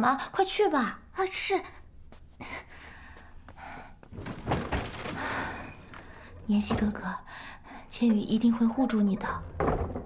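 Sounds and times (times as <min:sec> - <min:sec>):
woman breathing softly: 0:02.4 - 0:04.1.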